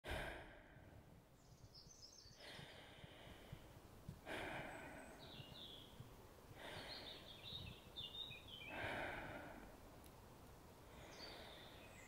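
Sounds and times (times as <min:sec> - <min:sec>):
person sighing exhale: 0:08.7 - 0:09.8.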